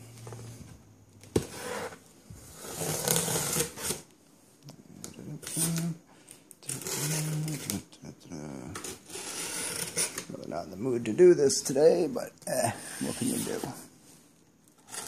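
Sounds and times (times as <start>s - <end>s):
knife slicing through packing tape: 2.6s - 4.0s.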